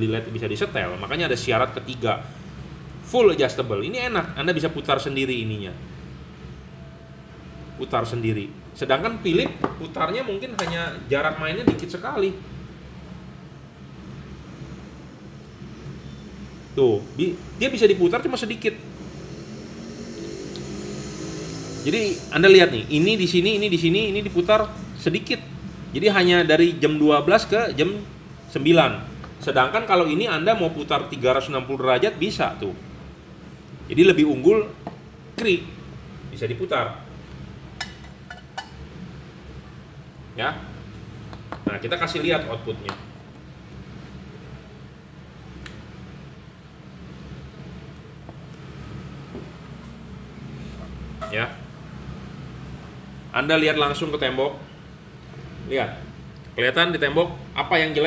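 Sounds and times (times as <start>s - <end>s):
low engine-like hum: 0.0s - 58.0s.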